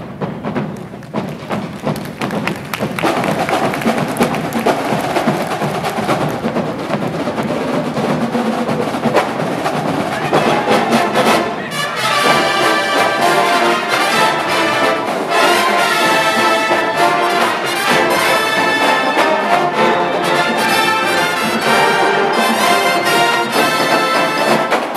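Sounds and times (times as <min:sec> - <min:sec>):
drum and rim hits: 0:00.0 - 0:24.9
brass section playing: 0:02.0 - 0:24.9.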